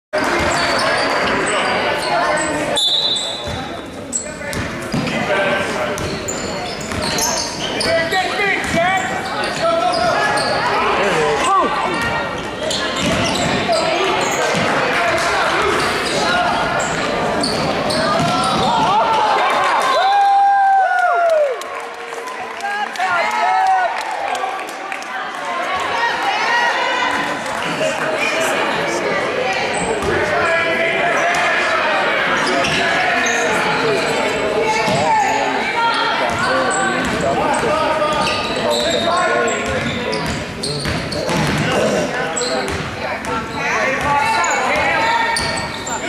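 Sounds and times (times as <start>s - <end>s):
basketball bouncing on wooden floor: 18.2s - 18.7s, 39.7s - 41.6s.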